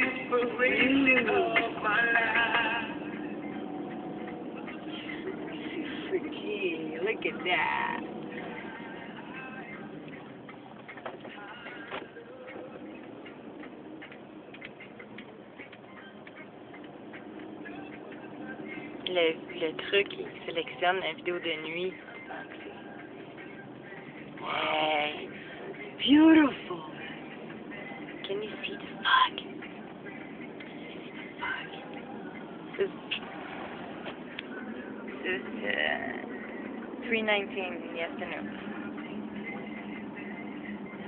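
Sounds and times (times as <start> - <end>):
road noise inside car: 0.0 - 41.0.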